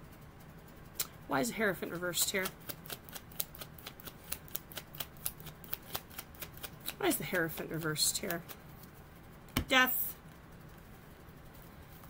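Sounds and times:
cards being shuffled by hand: 0:01.8 - 0:09.0.

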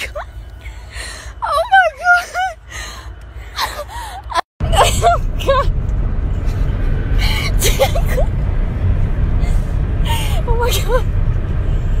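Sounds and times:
low rumble inside car: 0:00.0 - 0:12.0
woman crying and wailing: 0:01.4 - 0:02.7, 0:03.6 - 0:05.7.

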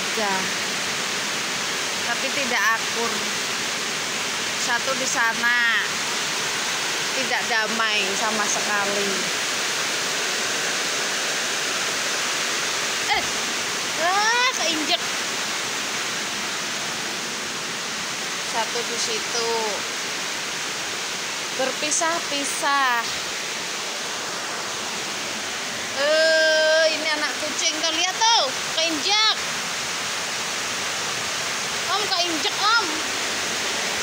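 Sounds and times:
steady hiss: 0:00.0 - 0:34.0.

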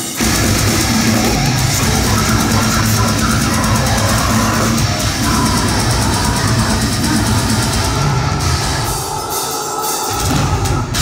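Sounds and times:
drum kit: 0:00.0 - 0:11.0
heavy distorted guitars: 0:00.0 - 0:11.0.

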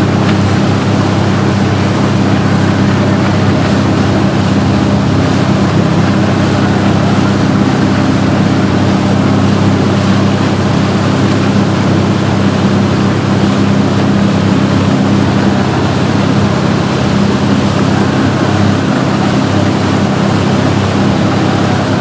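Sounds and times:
boat engine droning: 0:00.0 - 0:22.0
water rushing from wake: 0:00.0 - 0:22.0.

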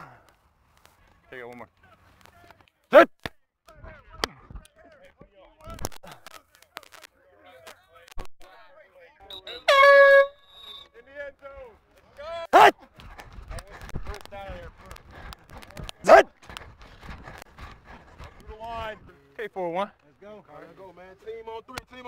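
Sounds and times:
voices of players: 0:00.9 - 0:22.0
air horn blast: 0:09.3 - 0:10.8
loud shouts: 0:12.2 - 0:12.8.

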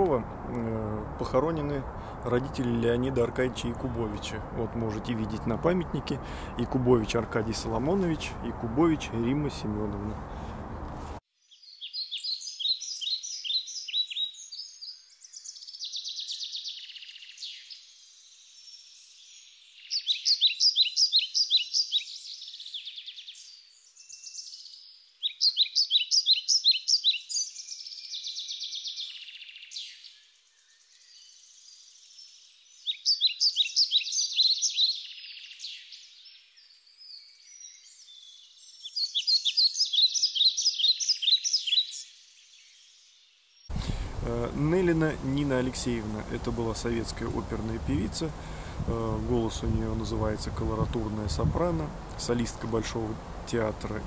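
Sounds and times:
faint bird chirps: 0:11.4 - 0:44.0
small bird trilling: 0:38.8 - 0:42.0.

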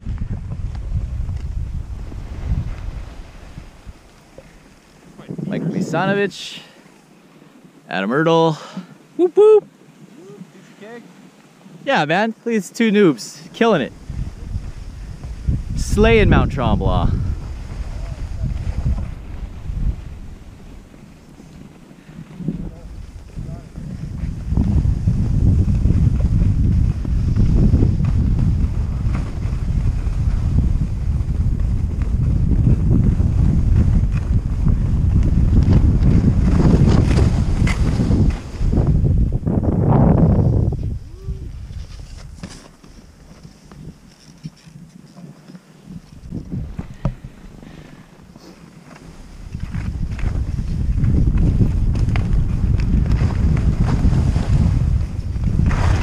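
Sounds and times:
wind buffeting microphone: 0:00.0 - 0:06.8, 0:13.0 - 0:56.0
skis scraping on snow: 0:00.0 - 0:07.8, 0:10.6 - 0:56.0.

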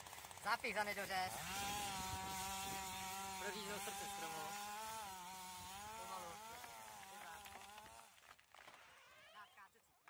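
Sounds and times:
chainsaw cutting: 0:00.0 - 0:09.5.

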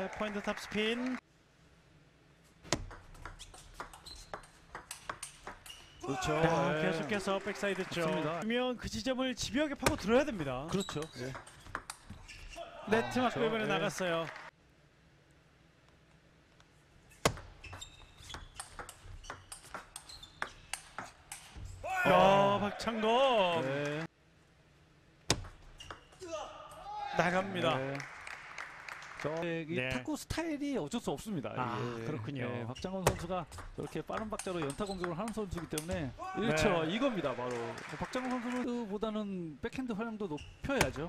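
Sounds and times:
ball bouncing on table: 0:02.7 - 0:05.9, 0:09.8 - 0:10.1, 0:25.3 - 0:26.0, 0:33.0 - 0:36.0, 0:40.8 - 0:41.0
table tennis ball clicking: 0:02.8 - 0:05.8
high squeaks: 0:03.4 - 0:04.6, 0:10.7 - 0:12.7, 0:17.1 - 0:21.9.

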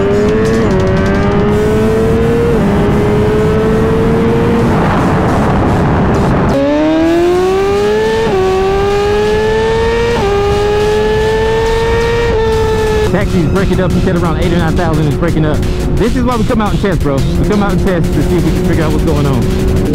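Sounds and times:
motorcycle engine accelerating: 0:00.0 - 0:19.9
wind rush: 0:00.0 - 0:19.9.

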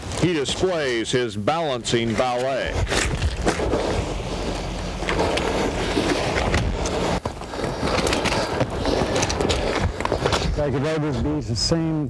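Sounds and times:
tyre rolling over loose shale: 0:00.0 - 0:10.9.

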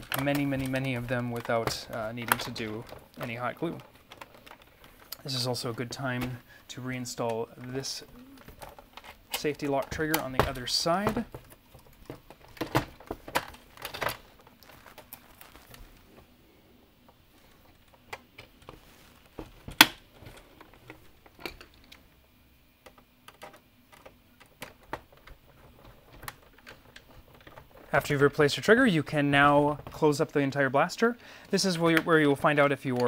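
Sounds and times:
plastic parts clicking and tapping: 0:00.0 - 0:06.5, 0:07.1 - 0:16.3, 0:17.0 - 0:22.0, 0:22.8 - 0:30.4, 0:31.4 - 0:33.0.

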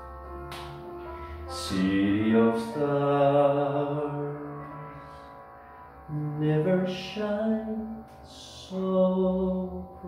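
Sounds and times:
man singing long note: 0:01.5 - 0:10.0.

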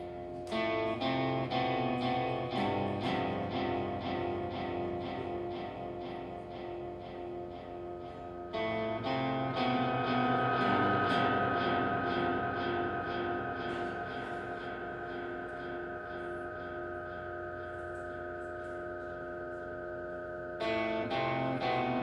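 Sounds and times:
electric guitar picking with echo: 0:00.0 - 0:22.0
steady high tone: 0:00.0 - 0:22.0.

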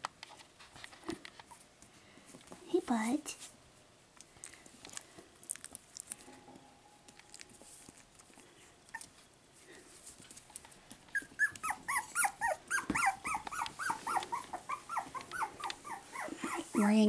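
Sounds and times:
puppy whining: 0:07.1 - 0:09.3, 0:11.1 - 0:17.0.

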